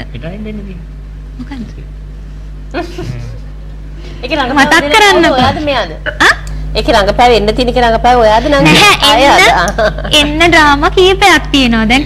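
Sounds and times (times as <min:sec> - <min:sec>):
steady low hum: 0:00.0 - 0:12.0
people talking: 0:02.8 - 0:03.4, 0:04.2 - 0:12.0.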